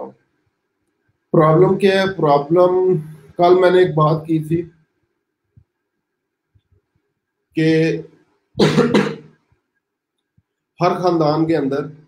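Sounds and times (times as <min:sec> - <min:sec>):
man coughing: 0:08.6 - 0:09.4.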